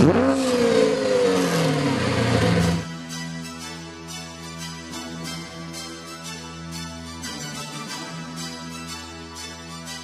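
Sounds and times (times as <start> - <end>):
car engine revving: 0.0 - 2.9.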